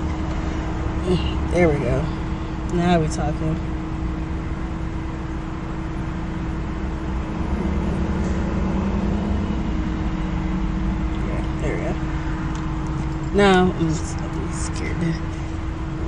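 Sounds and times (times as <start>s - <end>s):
car idling: 0.0s - 16.0s.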